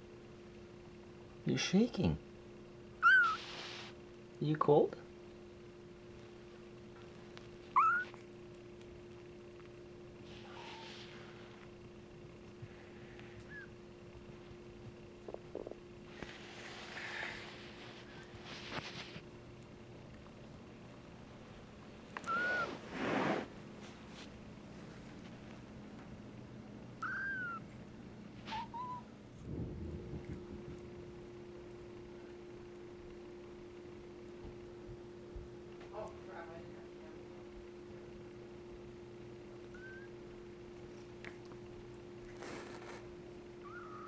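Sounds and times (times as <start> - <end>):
kitten mewing: 3.0 - 3.6, 7.7 - 8.3, 10.4 - 11.3, 22.2 - 22.8, 27.0 - 27.7, 28.5 - 29.1, 39.6 - 40.2, 43.6 - 44.0
scratchy noise: 22.5 - 23.5.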